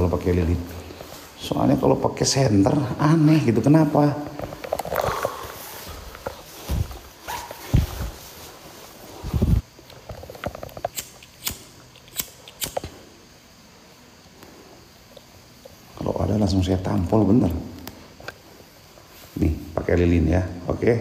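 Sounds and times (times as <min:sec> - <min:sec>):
handling noise: 0:03.7 - 0:11.3.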